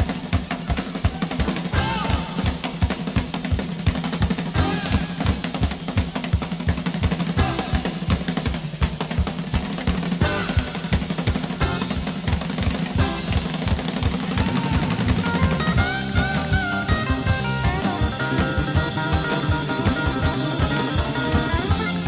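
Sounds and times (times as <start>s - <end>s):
instrumental rock and roll music: 0.0s - 22.0s.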